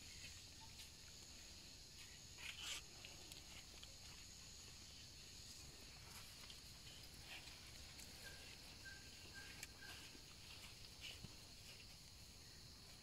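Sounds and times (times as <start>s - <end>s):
soft rustles: 0.0s - 13.0s.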